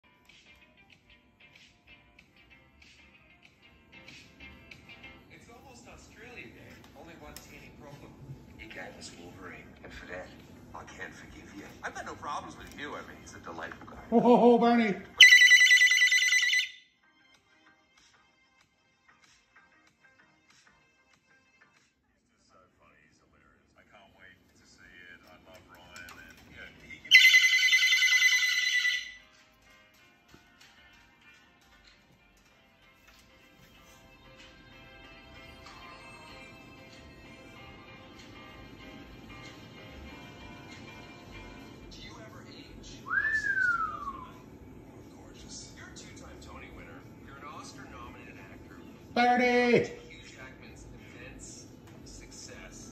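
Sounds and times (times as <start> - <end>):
high fast-trilling ringtone: 15.2 - 16.9, 27.1 - 29.3.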